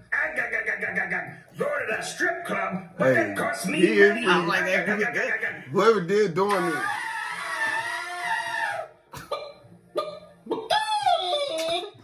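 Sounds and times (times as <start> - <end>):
chicken impression squawk: 6.6 - 9.0, 10.0 - 12.0.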